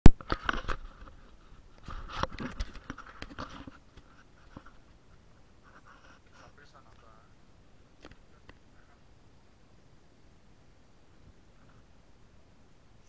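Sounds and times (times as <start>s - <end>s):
camera handling knocks and rustles: 0.1s - 4.8s.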